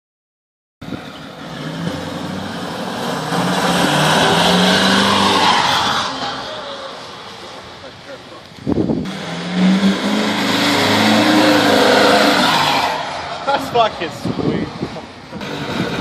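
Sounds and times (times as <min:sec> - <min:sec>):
diesel truck passing: 0:00.8 - 0:16.0.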